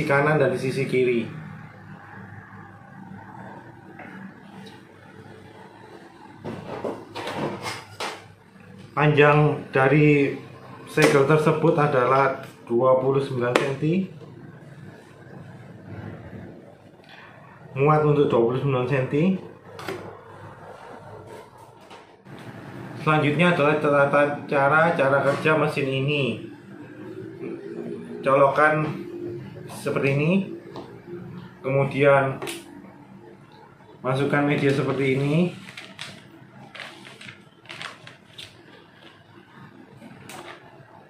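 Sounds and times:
plastic bag crinkling: 0:35.5 - 0:39.2.

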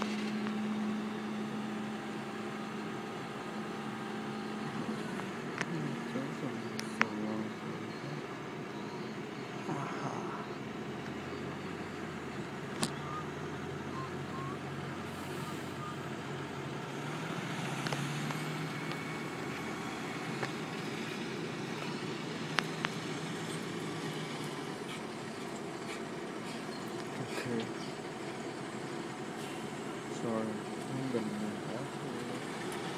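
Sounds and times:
diesel truck engine running: 0:00.0 - 0:32.9
sharp clicks: 0:22.5 - 0:23.1.

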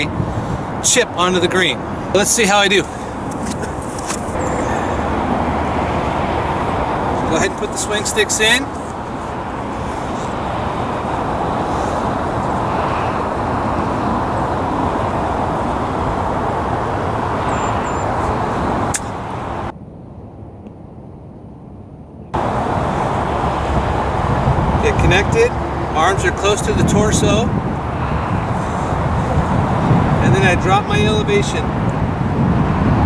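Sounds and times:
distant traffic rushing: 0:00.0 - 0:33.0
sharp click: 0:18.9 - 0:19.2.

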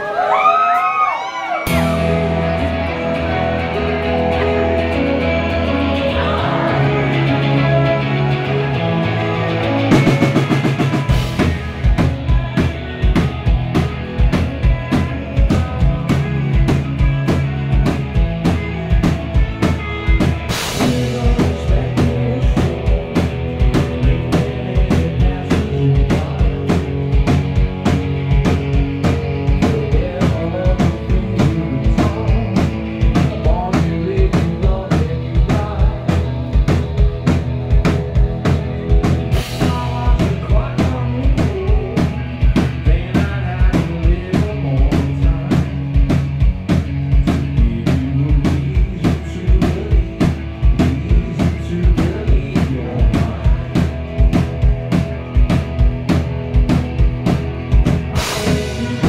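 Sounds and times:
rock band playing loudly: 0:00.0 - 0:59.0
drum kit beat: 0:01.7 - 0:59.0.

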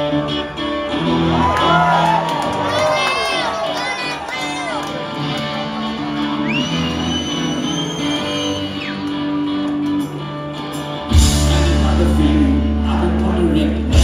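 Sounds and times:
electric guitars ringing: 0:00.0 - 0:14.0
crowd whooping and shouting: 0:00.9 - 0:09.6
long high whistle: 0:06.4 - 0:09.1.

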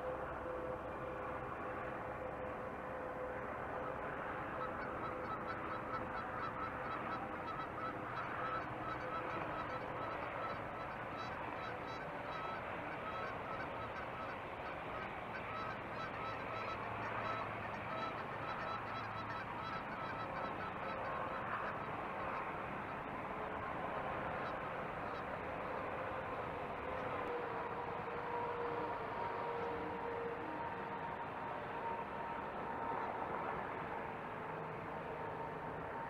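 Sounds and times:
outdoor background noise: 0:00.0 - 0:36.0.

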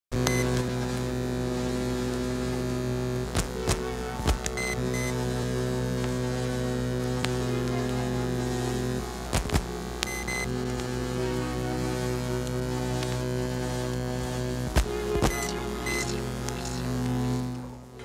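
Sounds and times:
electronic drone of layered tones: 0:00.2 - 0:18.0
short high beeps: 0:15.3 - 0:16.2.

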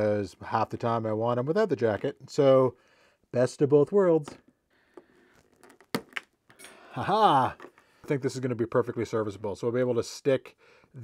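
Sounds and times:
handling noises: 0:07.4 - 0:08.3.

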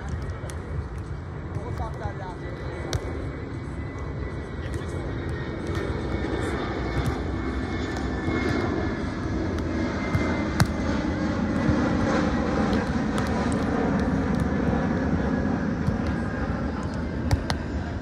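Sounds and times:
airplane engines droning overhead: 0:00.0 - 0:18.0.

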